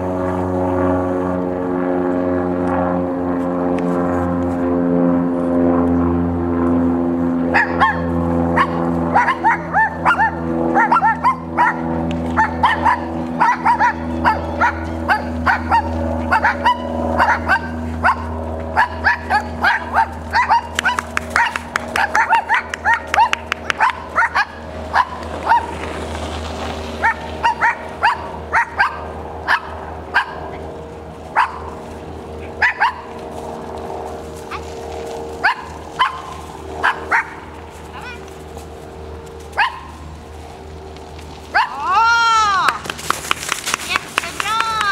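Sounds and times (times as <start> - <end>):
low hum: 0.0 - 44.9
dog barking: 7.5 - 25.7, 27.0 - 30.6, 31.4 - 31.7, 32.6 - 33.1, 35.4 - 37.4, 39.6 - 40.0, 41.6 - 41.8.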